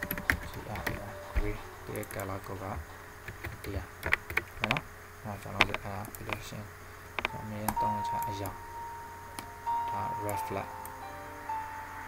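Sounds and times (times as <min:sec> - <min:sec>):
steady high tone: 0:00.0 - 0:03.2, 0:07.2 - 0:12.0
sharp clicks: 0:03.3 - 0:04.8, 0:05.4 - 0:06.5, 0:07.2 - 0:08.6.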